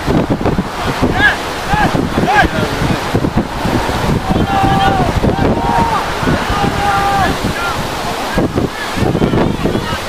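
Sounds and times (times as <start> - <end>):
wind buffeting microphone: 0.0 - 10.0
distant shouts: 0.8 - 10.0.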